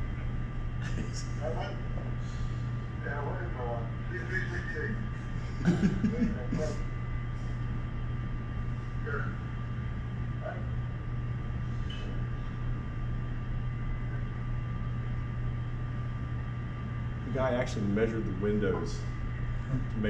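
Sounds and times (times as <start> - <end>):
hum and hiss: 0.0 - 20.0.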